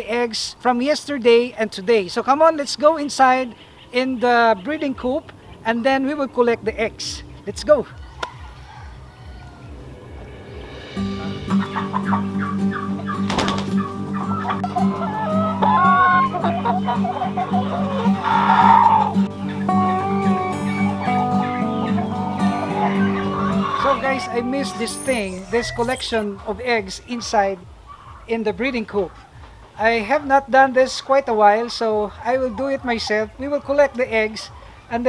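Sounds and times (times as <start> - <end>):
chickens clucking: 2.6 - 26.3, 27.0 - 35.0
background music: 4.3 - 30.8.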